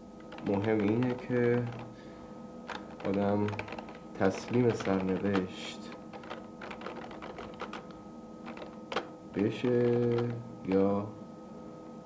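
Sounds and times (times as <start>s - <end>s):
keyboard typing clicks: 0.2s - 1.9s, 2.7s - 5.5s, 6.1s - 9.1s, 9.7s - 10.8s.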